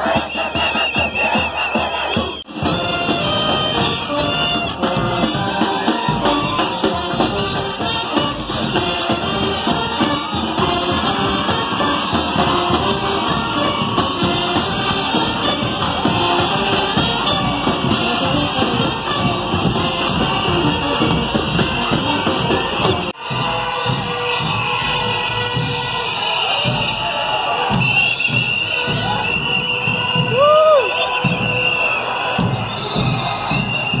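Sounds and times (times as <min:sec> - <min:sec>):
brass band playing: 0:00.0 - 0:34.0
crowd noise: 0:00.0 - 0:34.0.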